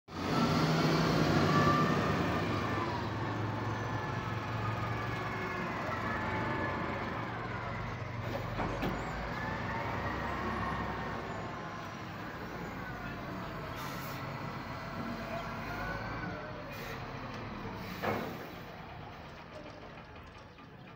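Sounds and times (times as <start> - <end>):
diesel engine running under load: 0.1 - 20.9.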